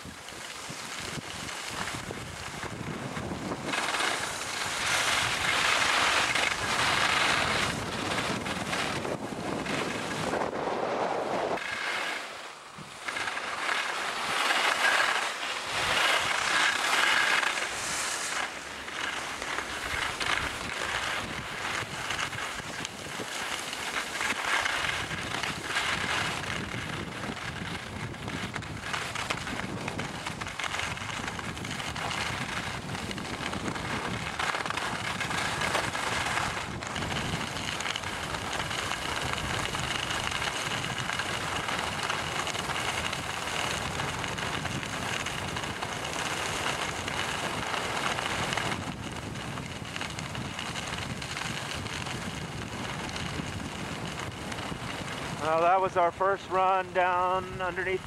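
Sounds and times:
skis sliding on snow: 0.0 - 58.0
wind rushing over microphone: 0.0 - 58.0.

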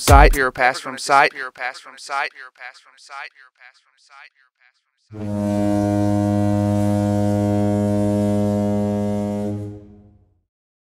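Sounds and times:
foghorn blast: 5.2 - 10.3.

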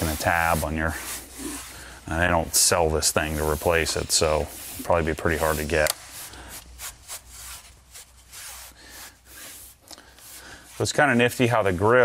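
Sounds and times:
hands rubbing speaker grille: 0.0 - 12.0.

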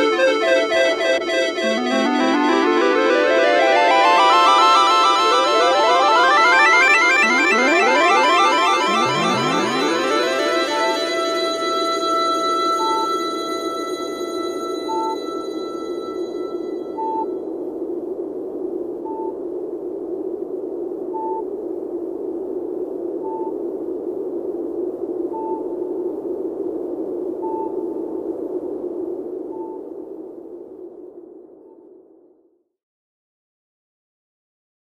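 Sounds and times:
sustained electronic chord: 0.0 - 17.2
short high beeps: 10.4 - 17.3.

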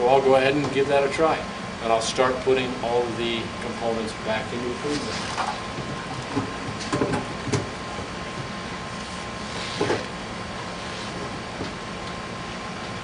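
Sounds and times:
ice machine hum: 0.0 - 13.0.

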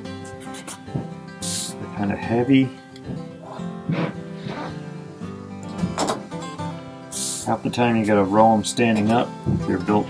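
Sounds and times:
acoustic guitar music: 0.0 - 10.0.

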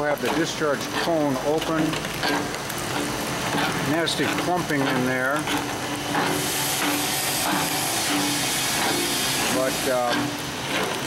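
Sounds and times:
machine drive humming: 0.0 - 11.0
loud hiss: 5.8 - 10.6.

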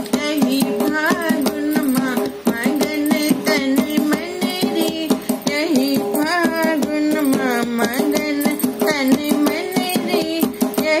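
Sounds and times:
rhythmic percussion: 0.0 - 11.0
woman singing folk song: 0.0 - 11.0.

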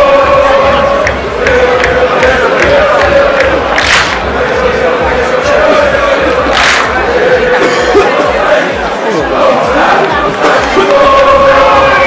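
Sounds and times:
steady drum beat: 0.0 - 8.0
voices chanting long notes: 0.0 - 12.0.

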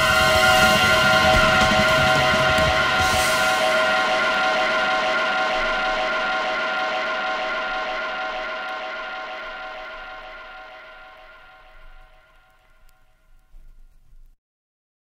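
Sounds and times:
sustained band chord: 0.0 - 12.8
cymbal wash: 0.0 - 13.3.

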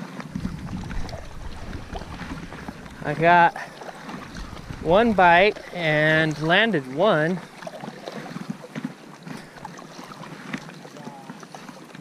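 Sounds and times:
wind on microphone: 0.0 - 6.4
small water splashes: 0.0 - 12.0
water sloshing against board: 0.0 - 12.0.

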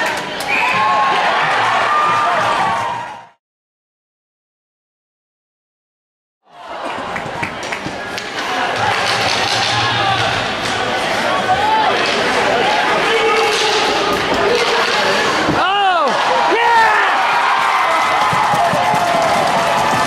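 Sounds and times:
crowd shouting and cheering: 0.0 - 3.4, 6.5 - 20.0
spectators talking and calling out: 6.5 - 20.0.

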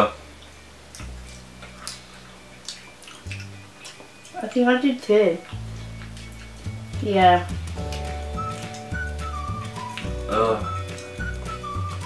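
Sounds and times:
steady low hum: 0.0 - 10.8
mouth chewing clicks and smacks: 0.4 - 12.0.

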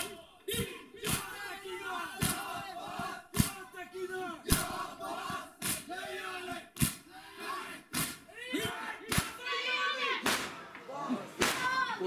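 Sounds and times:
men chanting: 0.0 - 10.0.

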